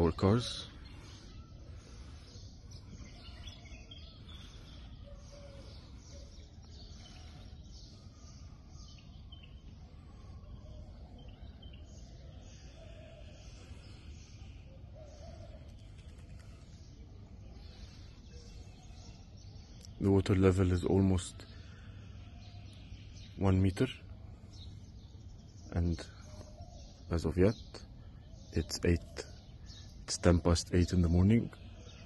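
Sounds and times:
faint bird chirps: 0.0s - 32.0s
outdoor background noise: 0.0s - 32.0s.

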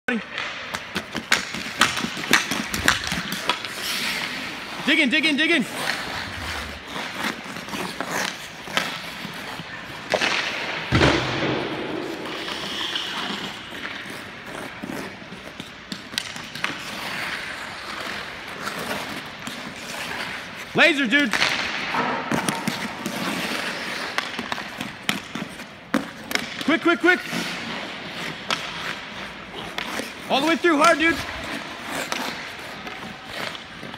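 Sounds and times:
hockey stick clacking on puck and ice: 0.1s - 6.2s, 6.8s - 33.9s
hockey stick knocks: 10.1s - 12.5s.

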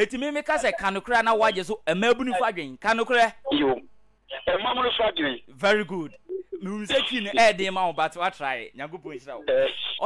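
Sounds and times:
men talking on radio: 0.0s - 10.0s.

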